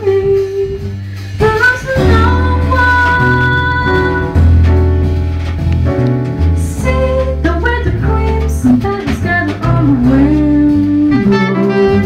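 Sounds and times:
woman singing into microphone: 0.0 - 4.4, 6.6 - 12.0
guitar and bass accompaniment: 0.0 - 12.0.

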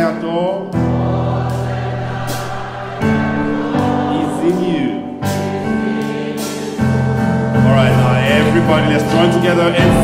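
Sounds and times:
electronic keyboard sustained chord: 0.8 - 10.0.

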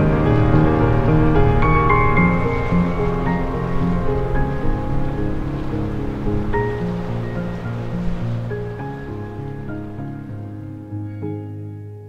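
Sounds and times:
slow sustained music notes: 0.0 - 12.0.

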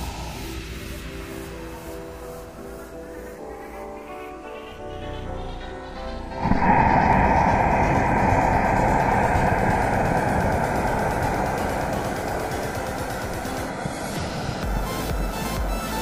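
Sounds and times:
background music with beat: 0.0 - 16.0
firework rocket rushing: 6.4 - 15.5.

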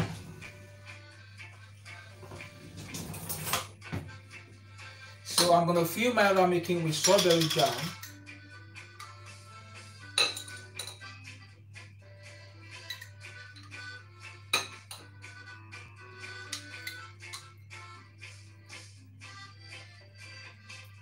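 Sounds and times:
soft background music: 0.0 - 21.0
spoon clinking against glass jar: 6.9 - 8.2, 10.1 - 11.1, 12.8 - 13.7, 14.5 - 15.1.

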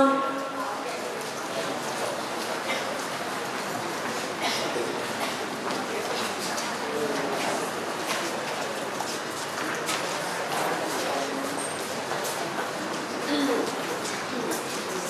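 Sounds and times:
audience chatter: 0.0 - 15.0.

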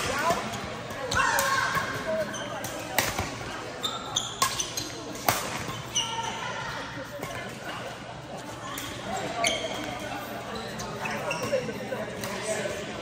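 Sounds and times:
court shoes squeaking: 0.0 - 13.0
racket hitting shuttlecock: 1.0 - 3.5, 4.4 - 5.7.

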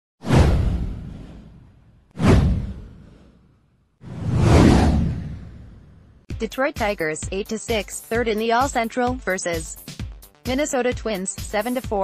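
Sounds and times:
cinematic whoosh: 0.2 - 6.3
deep low boom: 0.3 - 3.3, 4.1 - 6.2.

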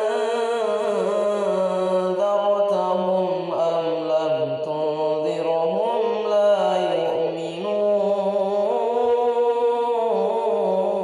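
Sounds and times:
man reciting melodically: 0.0 - 11.0.

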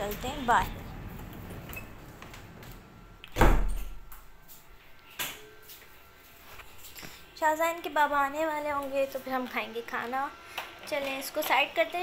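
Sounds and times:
door thudding shut: 3.3 - 4.0.

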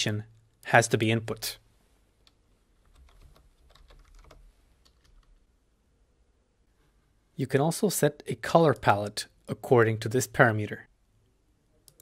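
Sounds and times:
keyboard typing: 2.2 - 5.4.

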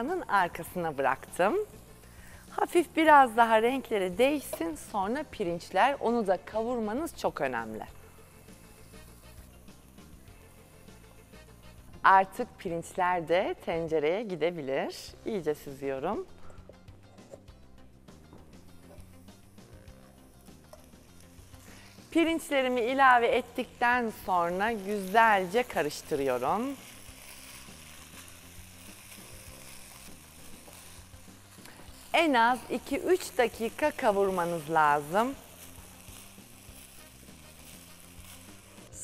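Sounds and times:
soft background music: 0.0 - 39.0
rice grains poured into pot: 18.7 - 39.0.

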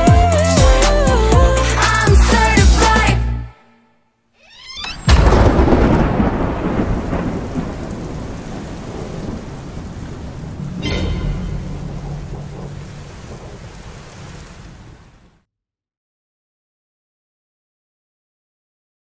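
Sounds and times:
rain: 4.8 - 15.5
thunder claps: 5.0 - 15.4.

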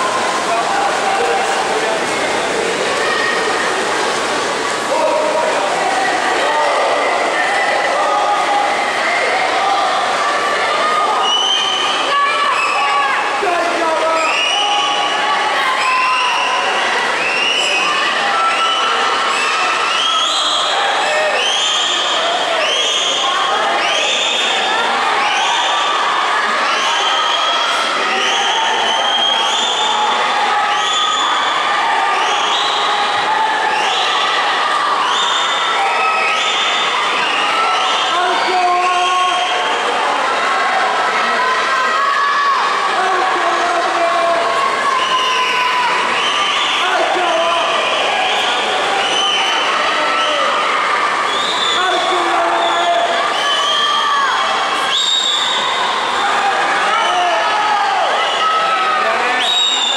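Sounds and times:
rhythmic crowd shouts: 0.0 - 59.9
spectators cheering and shouting: 0.0 - 59.9.

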